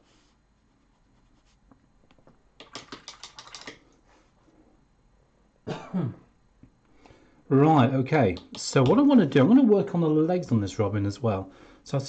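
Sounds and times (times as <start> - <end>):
computer keyboard typing: 2.6 - 3.9
man coughing: 5.6 - 6.3.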